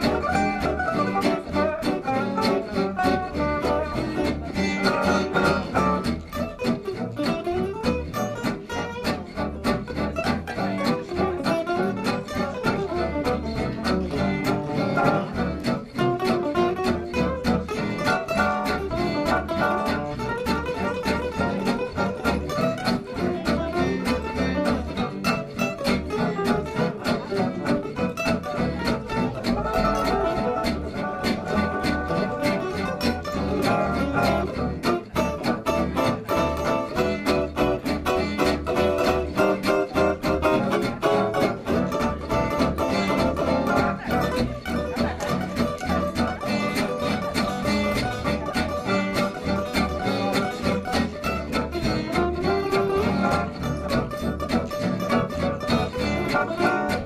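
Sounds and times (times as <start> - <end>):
acoustic guitars strumming: 0.0 - 57.0
plucked double bass: 0.0 - 57.0.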